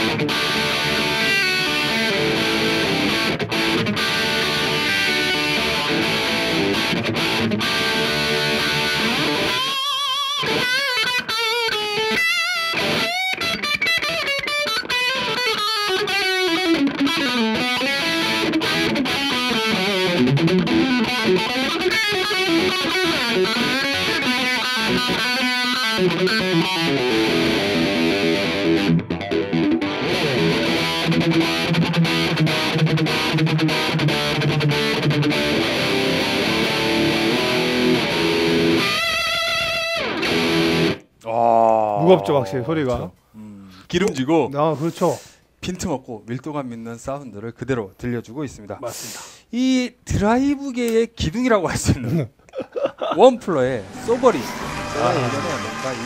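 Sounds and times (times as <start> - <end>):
distorted electric guitar: 0.0 - 41.2, 53.6 - 56.0.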